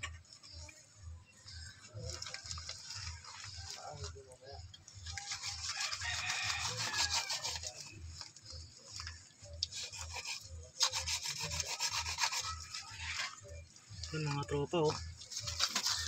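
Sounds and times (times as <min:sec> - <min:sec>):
knife sawing through fish head: 0:05.2 - 0:07.9, 0:09.7 - 0:13.0, 0:15.4 - 0:16.0.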